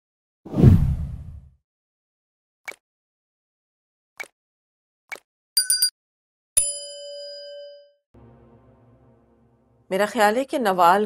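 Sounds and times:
bell ding: 0:06.6 - 0:08.0.

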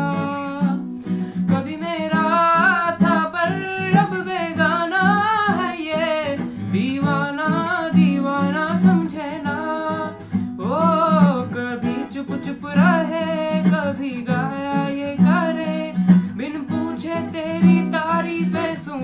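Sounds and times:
boy singing: 0:00.0 - 0:00.8, 0:01.5 - 0:19.0
acoustic guitar: 0:00.0 - 0:19.0.

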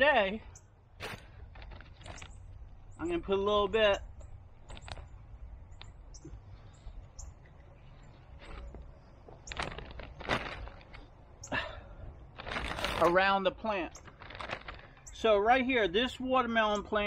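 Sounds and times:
low steady rumble: 0:00.0 - 0:17.0
bag rustling and crinkling: 0:01.0 - 0:02.9, 0:08.0 - 0:15.2.

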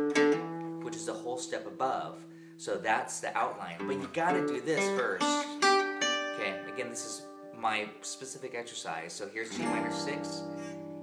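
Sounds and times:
acoustic guitar notes: 0:00.0 - 0:08.5, 0:09.4 - 0:11.0.

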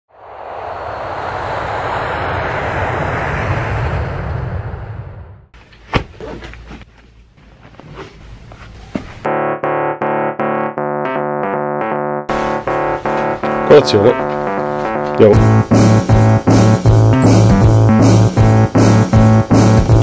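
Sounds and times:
steady rushing noise: 0:00.1 - 0:05.5
piano music: 0:09.3 - 0:18.3.

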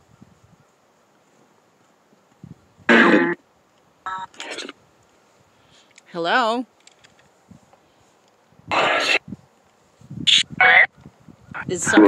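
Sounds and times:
short electronic bursts: 0:08.7 - 0:09.2.

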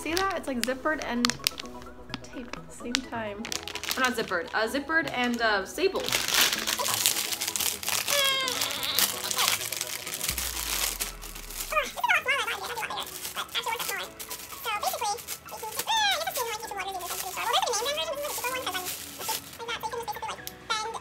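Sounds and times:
plastic bag crinkling: 0:00.0 - 0:21.0.

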